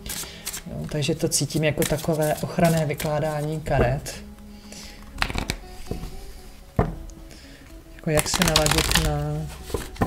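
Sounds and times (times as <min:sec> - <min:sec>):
cards being shuffled: 0:00.0 - 0:03.6, 0:05.0 - 0:05.6, 0:08.1 - 0:10.0
soft background music: 0:00.0 - 0:10.0.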